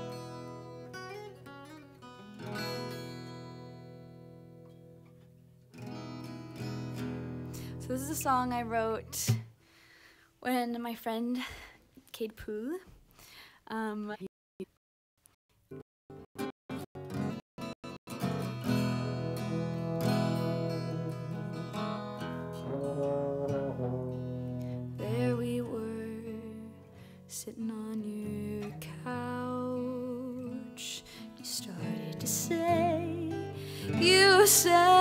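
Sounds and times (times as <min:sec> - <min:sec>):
acoustic guitar strumming chords: 0:00.0 - 0:09.4, 0:16.1 - 0:27.0, 0:31.6 - 0:35.0.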